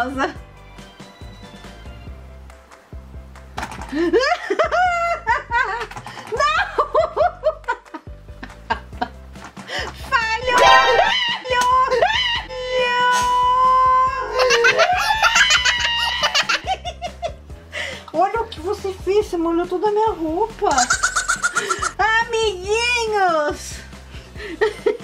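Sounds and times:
light background music: 0.0s - 25.0s
woman laughing and shrieking: 10.6s - 12.9s, 14.2s - 16.8s.

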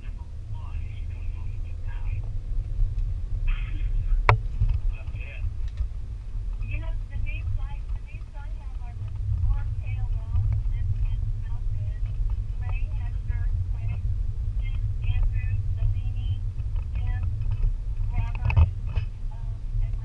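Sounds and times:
indistinct voices talking: 0.0s - 2.4s, 3.4s - 5.6s, 6.5s - 20.0s
steady low rumble: 0.0s - 20.0s.

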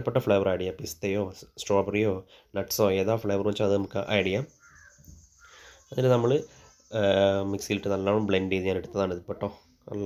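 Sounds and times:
person speaking: 5.9s - 10.0s.

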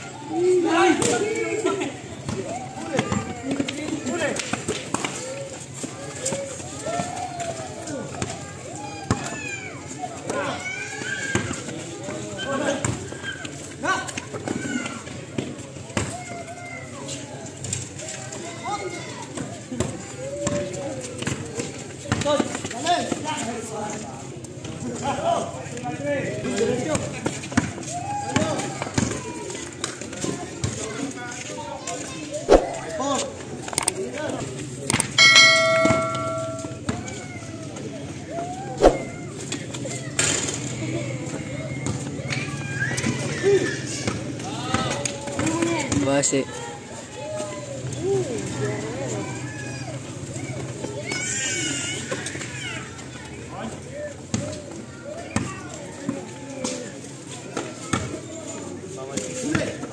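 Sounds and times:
people calling out and talking: 26.4s - 40.0s.

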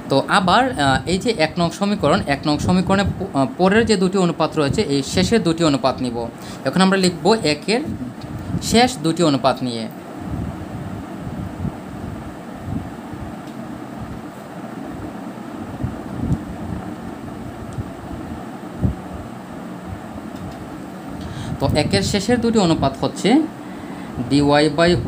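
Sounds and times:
background hiss: 0.0s - 25.0s.

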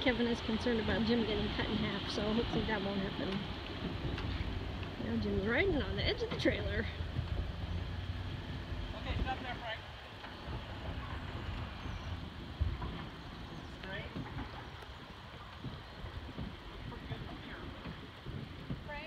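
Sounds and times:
uneven low rumbling: 0.0s - 19.0s
vehicle engine idling: 0.0s - 19.0s.

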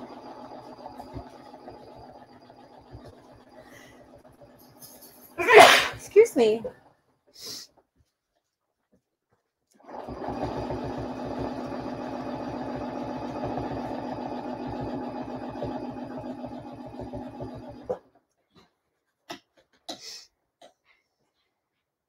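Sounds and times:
sewing machine stitching fast: 0.0s - 5.4s, 9.8s - 18.0s.

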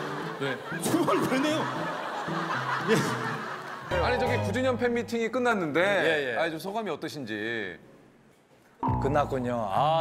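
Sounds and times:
people laughing and snickering: 0.0s - 3.9s
light background music: 0.0s - 5.8s.

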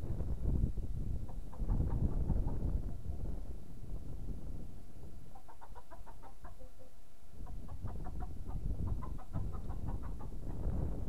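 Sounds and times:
wind rumble on microphone: 0.0s - 6.7s, 7.3s - 11.0s
bird clucking calls: 1.2s - 3.2s, 5.3s - 10.7s.

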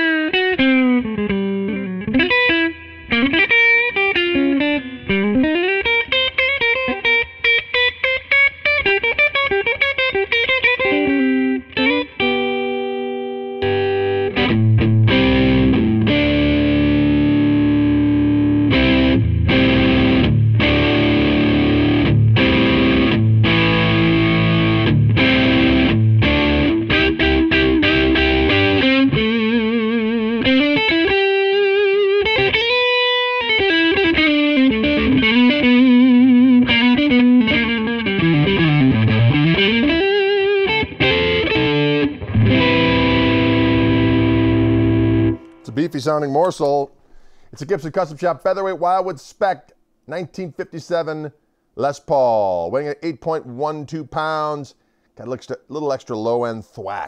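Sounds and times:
overdriven electric guitar: 0.0s - 45.7s.

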